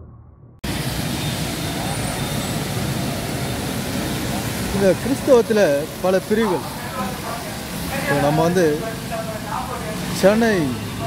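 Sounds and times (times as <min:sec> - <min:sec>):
traffic hiss on wet street: 0:00.6 - 0:11.0.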